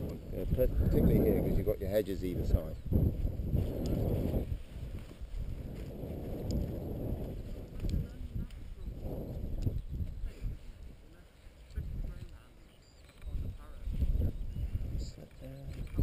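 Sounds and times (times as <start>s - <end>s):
low muffled rumbling: 0.0s - 12.5s.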